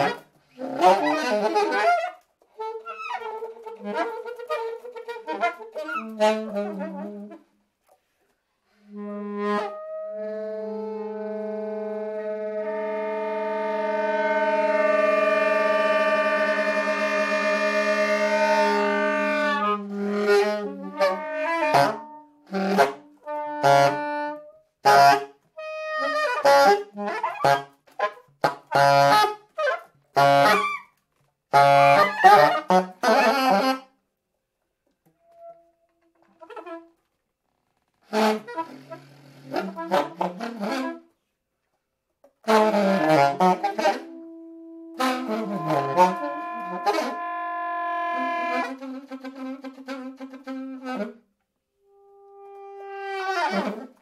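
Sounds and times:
saxophone duo playing: 0:00.0 - 0:07.6, 0:08.8 - 0:33.9, 0:35.1 - 0:37.2, 0:38.0 - 0:41.2, 0:42.4 - 0:54.0.

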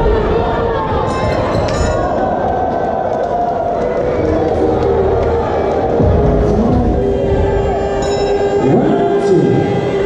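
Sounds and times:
crowd cheering and shouting: 0:00.0 - 0:10.0
music playing: 0:00.0 - 0:10.0.

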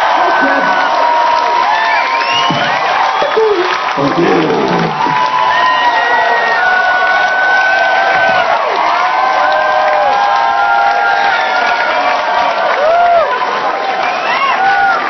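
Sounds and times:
crowd cheering and shouting: 0:00.0 - 0:15.0
crowd clapping: 0:00.0 - 0:15.0.

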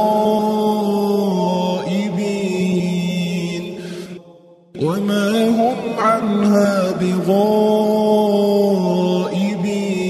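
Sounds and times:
person chanting melodically: 0:00.0 - 0:10.0.

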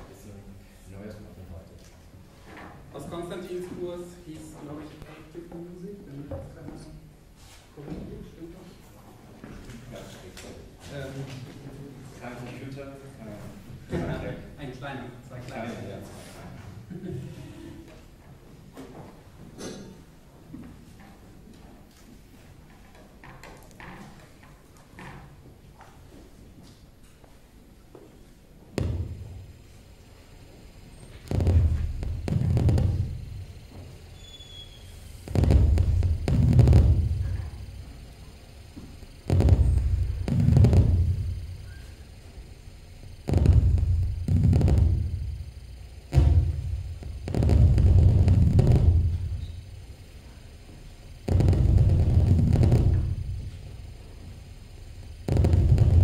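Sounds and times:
low eight-bit synthesizer notes: 0:28.8 - 0:56.0.

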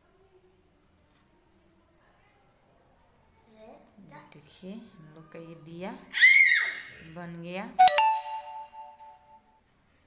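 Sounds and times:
chime-like ding: 0:07.8 - 0:09.4.

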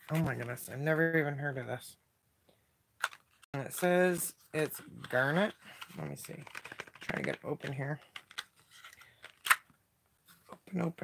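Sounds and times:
plastic packaging clicks and crackles: 0:05.8 - 0:09.7.

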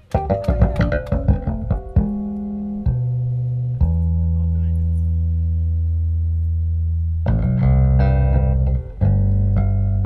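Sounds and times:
bass guitar playing harmonics: 0:00.0 - 0:10.0.

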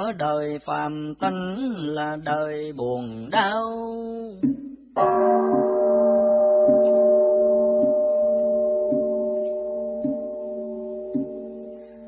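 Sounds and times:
bowl bell ringing: 0:05.0 - 0:12.0
soft regular knocks: 0:06.6 - 0:11.8.

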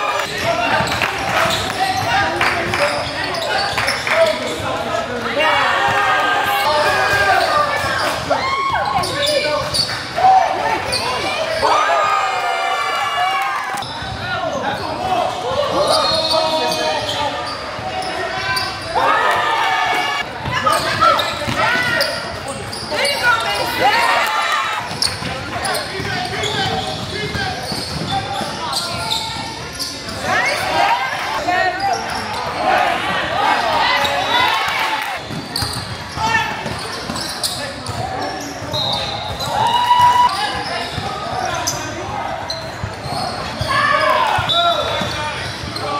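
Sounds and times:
basketball bouncing on court: 0:24.8 - 0:29.0, 0:35.2 - 0:38.7.

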